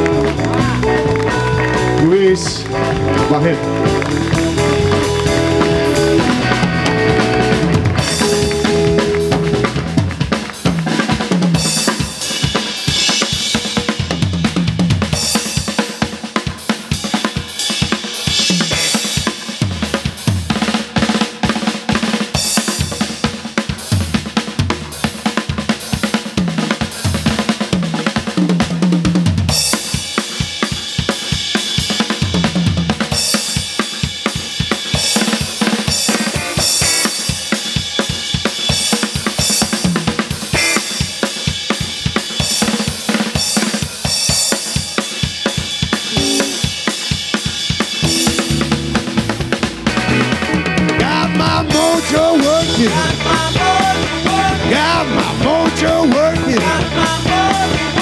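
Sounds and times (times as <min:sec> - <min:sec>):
drum kit solo: 0:00.0 - 0:58.0.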